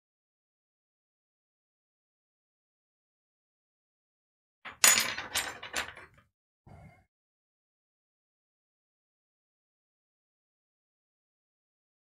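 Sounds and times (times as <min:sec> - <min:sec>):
small hard objects clattering: 0:04.7 - 0:06.1.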